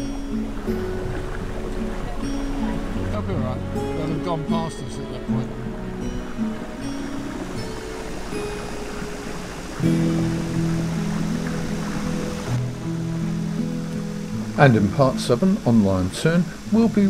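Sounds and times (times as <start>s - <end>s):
background music of held notes: 0.0s - 17.0s
water noise: 0.0s - 17.0s.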